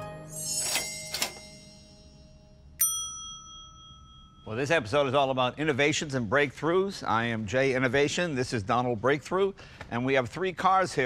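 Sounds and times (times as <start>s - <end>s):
bell-like ding: 0.0s - 4.9s.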